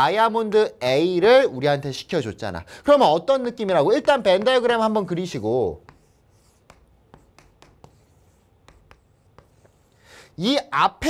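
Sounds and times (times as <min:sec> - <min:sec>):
chalk tapping and scraping on board: 0:03.6 - 0:10.3.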